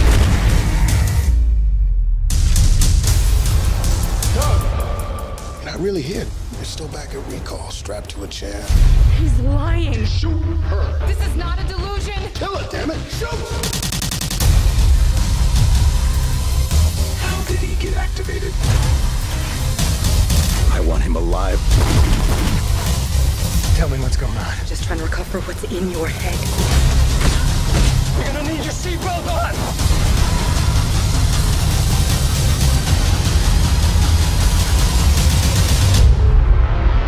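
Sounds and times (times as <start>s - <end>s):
heavy bass-laden score music: 0.0s - 7.8s, 8.6s - 37.0s.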